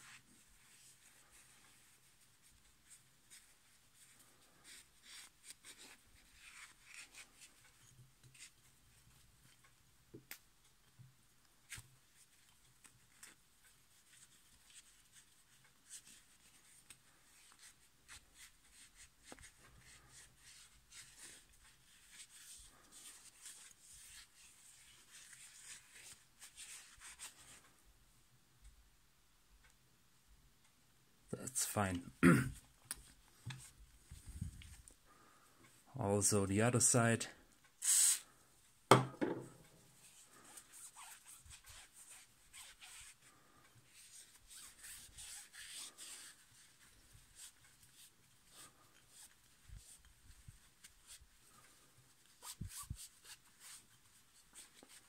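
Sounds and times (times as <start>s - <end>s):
cloth rag rubbing: 0.0s - 8.6s, 11.7s - 27.6s, 39.9s - 55.0s.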